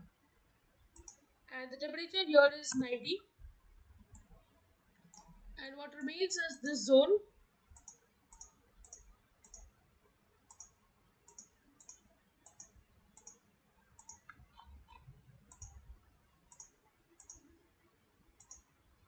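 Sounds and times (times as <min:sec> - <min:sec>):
computer mouse clicks: 0:00.9 - 0:01.3, 0:04.0 - 0:04.4, 0:05.0 - 0:05.4, 0:07.7 - 0:09.8, 0:10.4 - 0:17.6, 0:18.3 - 0:18.8.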